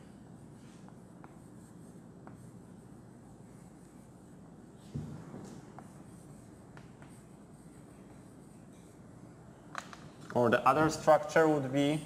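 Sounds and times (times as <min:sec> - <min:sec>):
chalk writing on blackboard: 0:00.0 - 0:10.2
chalk tapping: 0:00.0 - 0:10.4
low room hum: 0:00.0 - 0:12.0.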